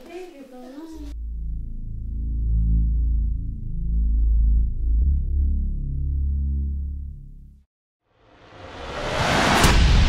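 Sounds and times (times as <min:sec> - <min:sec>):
dark synthesizer bass notes: 0:01.2 - 0:07.6.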